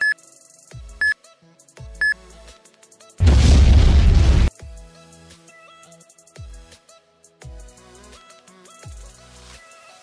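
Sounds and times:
background music: 0.0 - 10.0
loud boom: 3.2 - 4.5.

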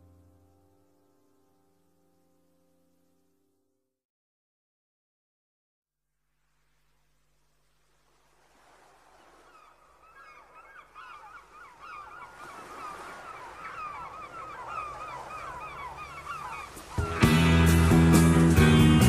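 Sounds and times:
flock of birds calling: 9.2 - 19.0
band with guitar and bass: 17.0 - 19.0.

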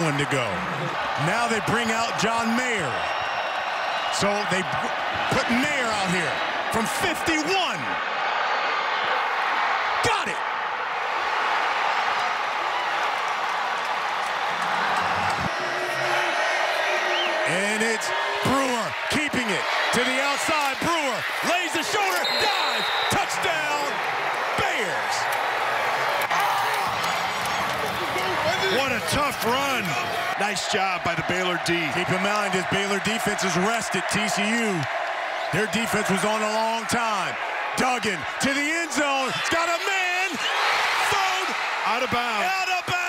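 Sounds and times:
stadium crowd cheering and yelling: 0.0 - 43.0.

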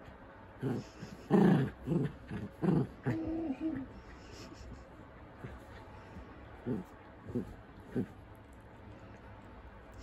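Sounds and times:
dog growling in play: 0.6 - 4.0, 6.6 - 8.2.

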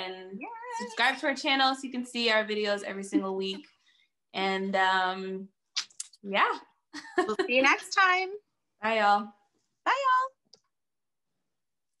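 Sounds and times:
woman speaking: 0.0 - 3.7, 4.4 - 5.5, 6.2 - 10.4.

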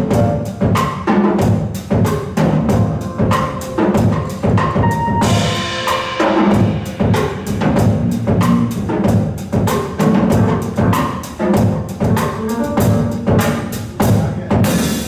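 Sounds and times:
drum strikes: 0.0 - 15.0
jazz ensemble playing: 0.0 - 15.0.

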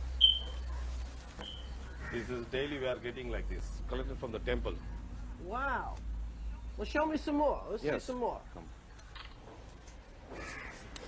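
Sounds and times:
faint bird call: 0.2 - 0.7, 1.4 - 2.3.

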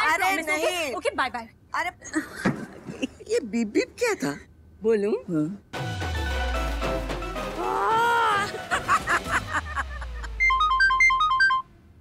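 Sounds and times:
mobile phone ringtone beeps: 10.4 - 11.7.

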